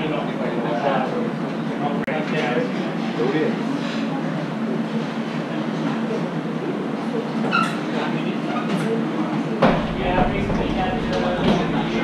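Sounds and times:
background voices: 9.6 - 12.0
knock: 9.6 - 12.0
low rumble: 9.7 - 12.0
steady drone: 9.7 - 12.0.

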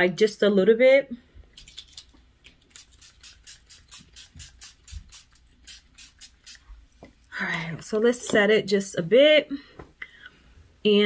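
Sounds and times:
spray mist hisses: 3.0 - 6.6.

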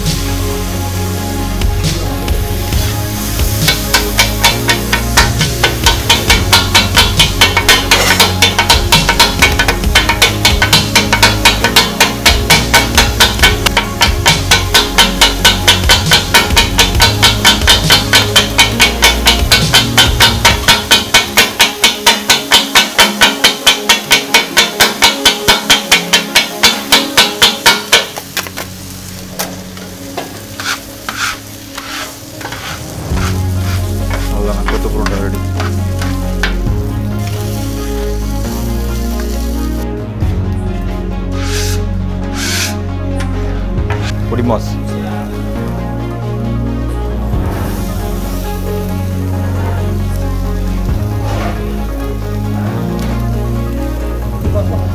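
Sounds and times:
background music: 0.0 - 54.9
metal blades clanging on griddle: 3.5 - 37.8, 41.4 - 41.8, 42.4 - 42.8, 47.6 - 53.3.

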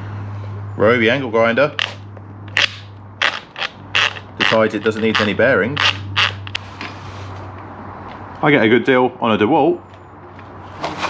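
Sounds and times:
grinder spindle crunching clicks: 1.8 - 6.6.

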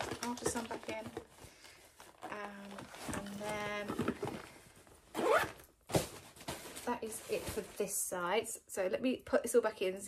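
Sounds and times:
bag zip pulled closed: 5.2 - 5.6.

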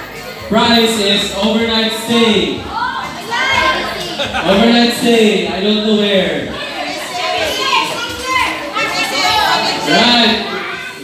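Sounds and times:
chatter in the room: 0.0 - 11.0
children talking and calling out: 0.0 - 11.0.

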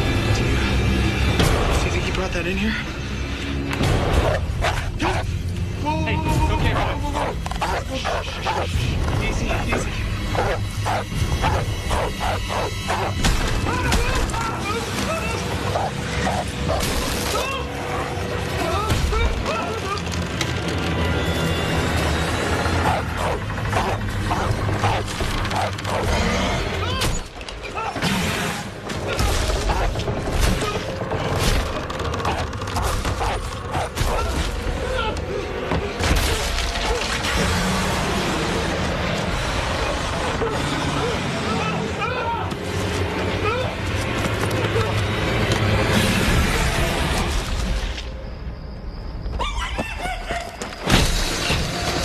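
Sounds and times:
dramatic film music: 0.0 - 52.0.

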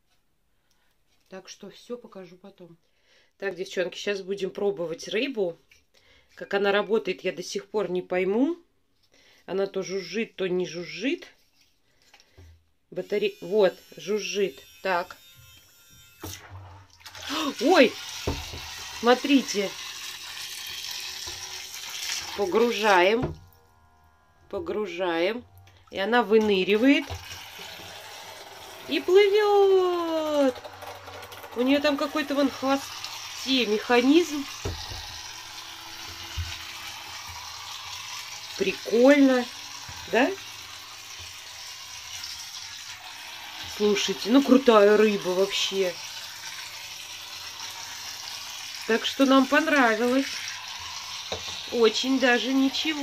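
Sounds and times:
small toy motor buzzing: 13.0 - 16.5, 17.2 - 53.0
bathwater churning and splashing: 16.3 - 53.0.

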